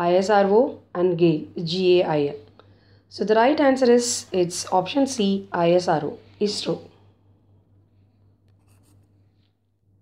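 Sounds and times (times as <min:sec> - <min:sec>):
low steady hum: 0:00.0 - 0:10.0
stylus scratching on tablet screen: 0:08.2 - 0:09.7.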